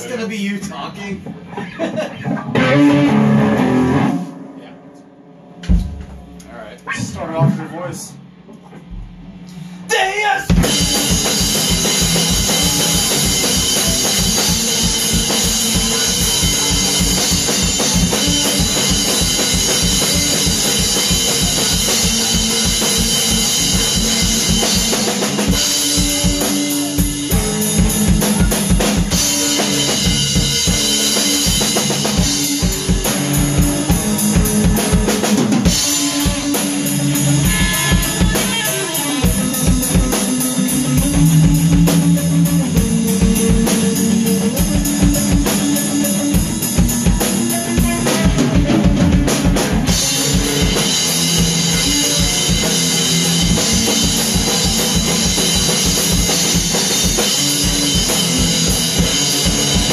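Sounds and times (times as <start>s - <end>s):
drum kit beat: 0.0s - 59.9s
electric guitars: 1.2s - 7.6s, 10.5s - 59.9s.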